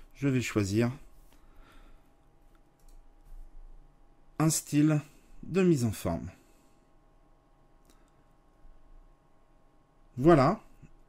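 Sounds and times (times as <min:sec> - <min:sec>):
low electrical hum: 0:00.0 - 0:11.0
faint computer mouse click: 0:02.5 - 0:03.0.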